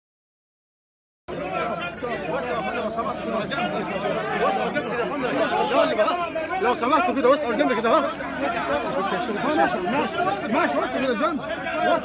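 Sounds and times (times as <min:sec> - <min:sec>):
crowd of men talking: 0:01.3 - 0:12.0.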